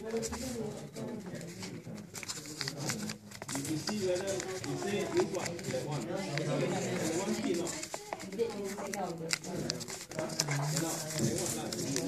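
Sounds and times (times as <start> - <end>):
low murmuring voice: 0.0 - 12.0
paper being creased and folded: 1.4 - 12.0.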